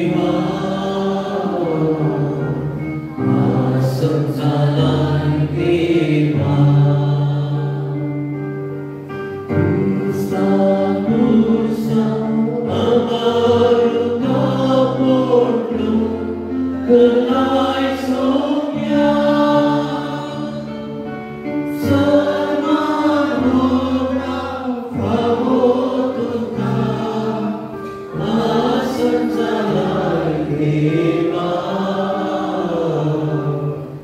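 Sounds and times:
choir singing a chant: 0:00.0 - 0:08.2, 0:09.5 - 0:34.0.

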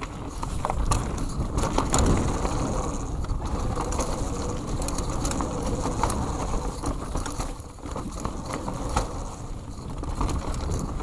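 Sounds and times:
bike clicks and rattles: 0:00.0 - 0:11.0
tyres rumbling on dirt: 0:00.0 - 0:11.0.

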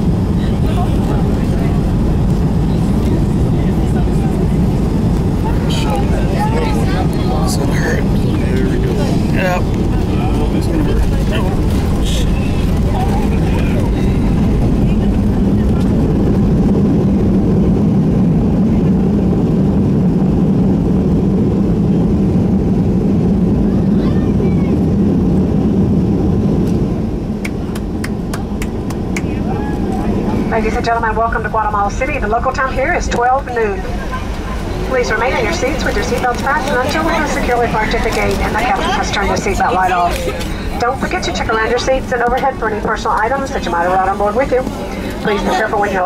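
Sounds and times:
aircraft engine and runway roar: 0:00.0 - 0:46.0
low hum: 0:00.0 - 0:46.0.

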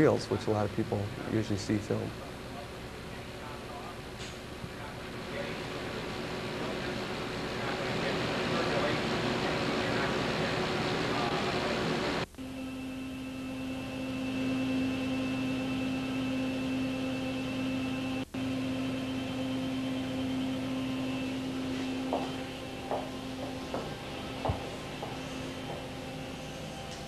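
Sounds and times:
film processing machine running: 0:00.0 - 0:27.0
steady equipment hum: 0:00.0 - 0:27.0.

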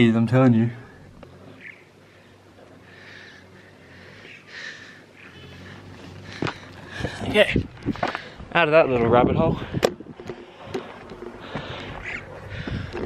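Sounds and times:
person climbing scuffs and rustles: 0:05.8 - 0:08.4.

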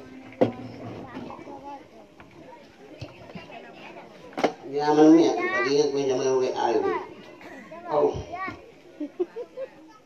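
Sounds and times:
children and people talking: 0:00.0 - 0:10.0.

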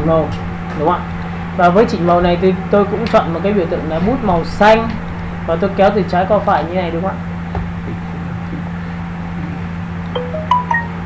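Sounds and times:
steady low hum: 0:00.0 - 0:11.0
clear ringing chime notes: 0:10.1 - 0:11.0.

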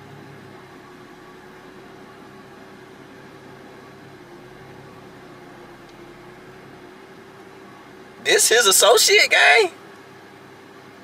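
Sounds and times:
faint constant hum: 0:00.0 - 0:11.0.

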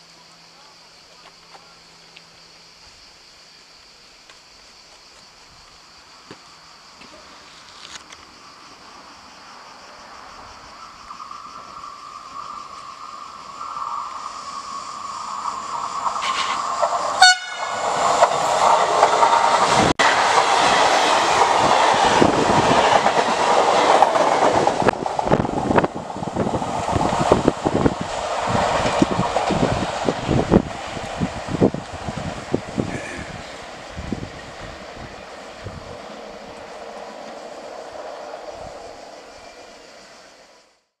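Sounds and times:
train wheels clattering over rail joints: 0:15.5 - 0:37.5
train horn: 0:17.2 - 0:17.8.

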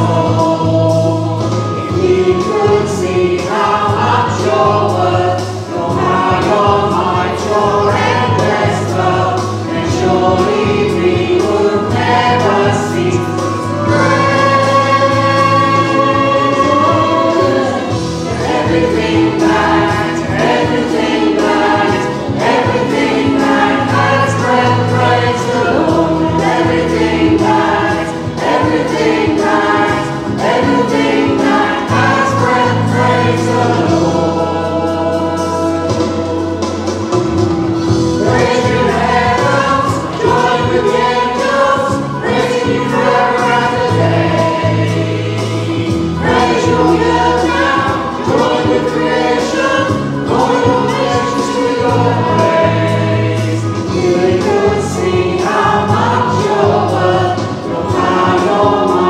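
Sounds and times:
group singing worship song: 0:00.0 - 0:59.0
sustained instrumental backing: 0:00.0 - 0:59.0.

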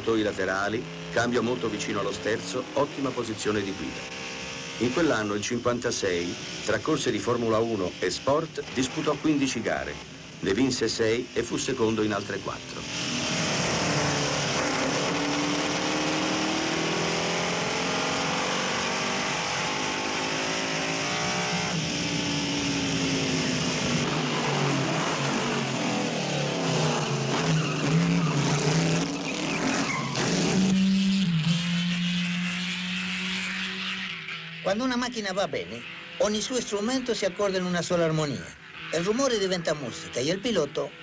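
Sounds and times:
racing engine revving: 0:00.0 - 0:41.0.

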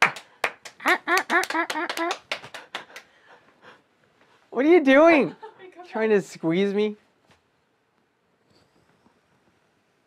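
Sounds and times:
hand claps: 0:00.0 - 0:03.2
laughter: 0:00.8 - 0:02.2, 0:05.2 - 0:05.8.

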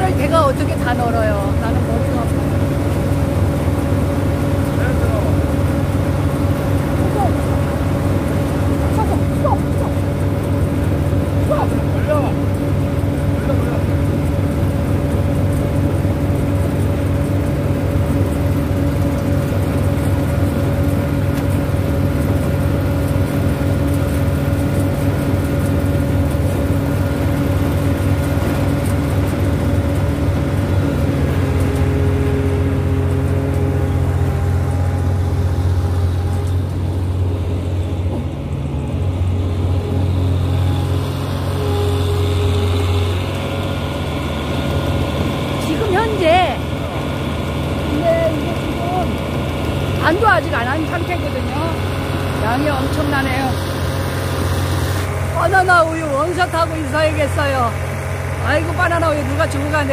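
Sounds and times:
diesel engine running: 0:00.0 - 0:59.9.

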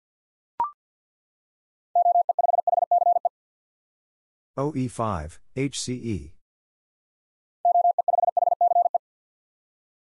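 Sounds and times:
morse code beeps: 0:02.0 - 0:03.3, 0:07.6 - 0:09.0.

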